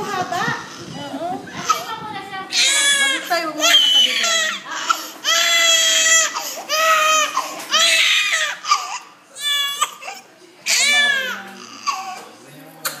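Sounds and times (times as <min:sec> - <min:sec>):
infant crying: 0:02.6 - 0:12.3.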